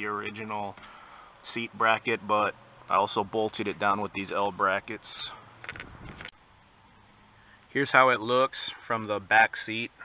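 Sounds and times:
camera handling rustle: 5.6s - 6.4s.

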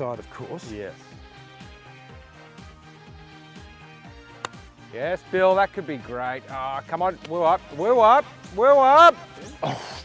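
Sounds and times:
background music with steady beat: 0.0s - 10.0s
golf club striking ball: 4.4s - 4.7s.

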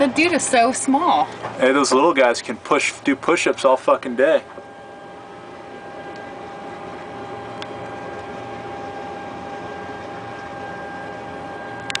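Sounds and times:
machinery hum: 0.0s - 12.0s
thin constant whine: 0.0s - 12.0s.

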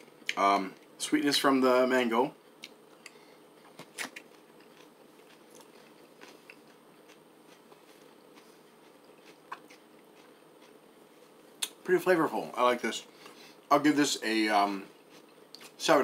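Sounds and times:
low room hum: 0.0s - 16.0s
person chewing food: 2.6s - 11.8s, 14.9s - 15.8s.

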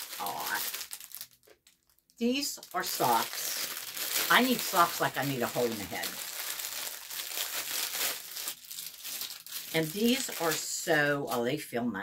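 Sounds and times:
plastic packaging crinkling: 0.0s - 11.5s.

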